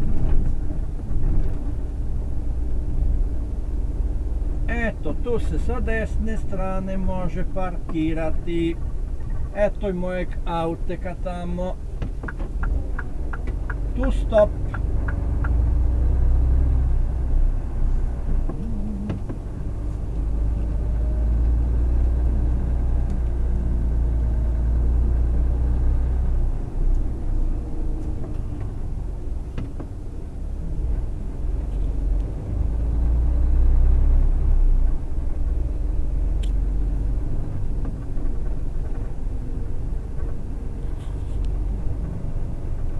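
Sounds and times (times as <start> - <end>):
vehicle engine rumbling: 0.0 - 42.9.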